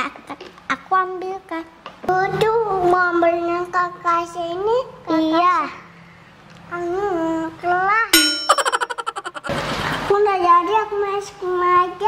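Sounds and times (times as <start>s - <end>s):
bright bell-like ding: 8.2s - 9.0s
rapid ringing pulses: 8.2s - 9.5s.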